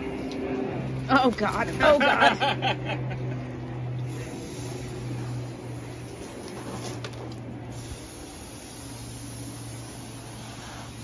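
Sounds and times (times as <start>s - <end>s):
low steady hum: 0.0s - 11.0s
water hose hissing onto deck: 4.1s - 11.0s.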